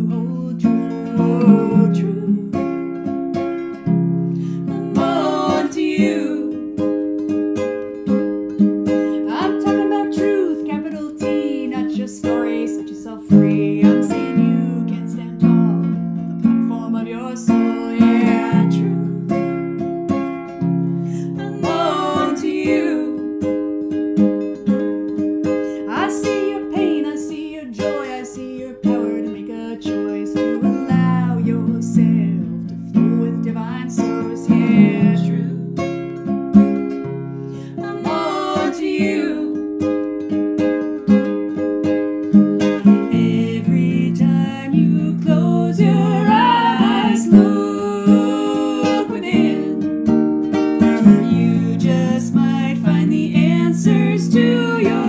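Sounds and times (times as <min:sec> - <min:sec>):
two women singing together: 0:00.0 - 0:02.7, 0:04.4 - 0:06.8, 0:09.1 - 0:15.9, 0:16.6 - 0:19.3, 0:21.1 - 0:23.3, 0:25.8 - 0:35.6, 0:37.6 - 0:39.7, 0:43.0 - 0:49.9, 0:50.9 - 0:55.0
classical guitar playing: 0:00.0 - 0:55.0.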